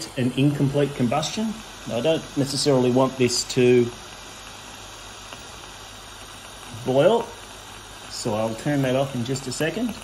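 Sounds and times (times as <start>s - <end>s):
burner flame hissing: 0.0s - 10.0s.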